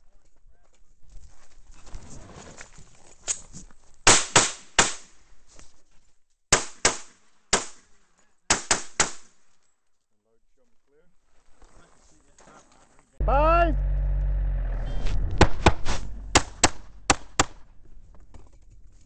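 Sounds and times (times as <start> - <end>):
pistol shots: 15.4 - 17.7.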